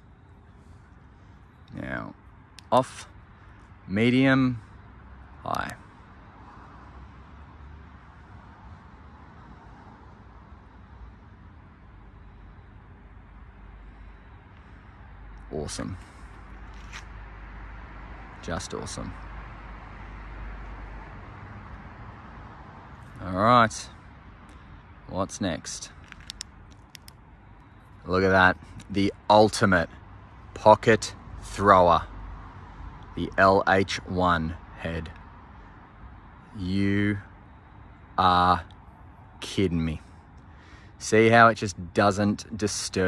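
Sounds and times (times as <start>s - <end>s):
distant traffic hum: 0.0s - 43.0s
flashlight switch clicks: 26.0s - 27.2s.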